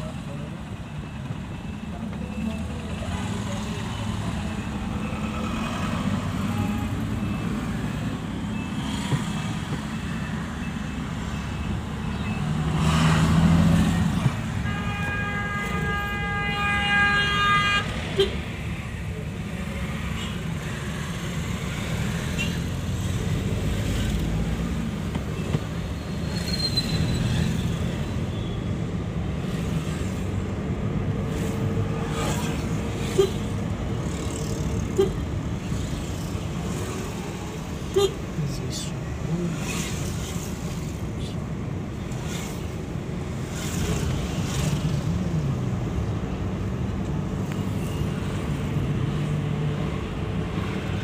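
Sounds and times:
car engine and tyres rumbling: 0.0 - 51.0.

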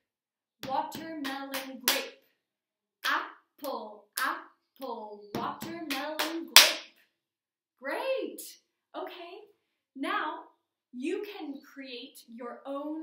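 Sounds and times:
woman clapping hands: 0.6 - 2.1, 5.4 - 6.9
woman chanting words: 3.0 - 6.6.

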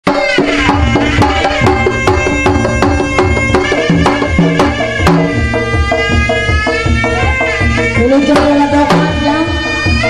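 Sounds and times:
hand drums: 0.0 - 10.0
shawm playing melody: 0.0 - 10.0.

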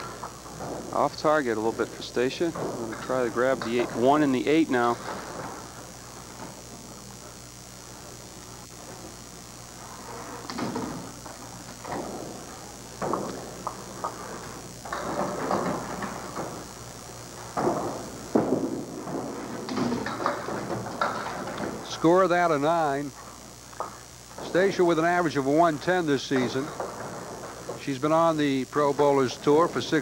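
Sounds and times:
room hum: 0.0 - 30.0
bowling pins knocked down: 17.5 - 22.0.

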